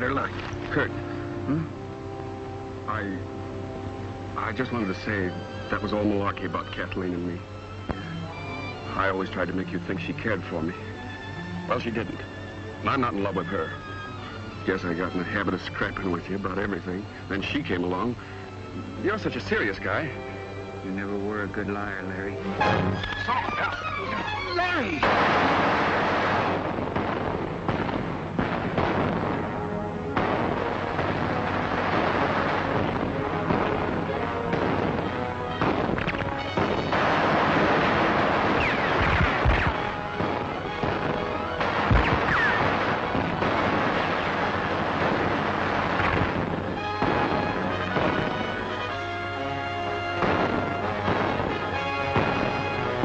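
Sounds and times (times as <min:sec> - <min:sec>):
film music score: 0:00.0 - 0:53.0
explosions: 0:24.9 - 0:49.5, 0:50.1 - 0:53.0
gunfire: 0:25.0 - 0:49.5, 0:50.1 - 0:53.0.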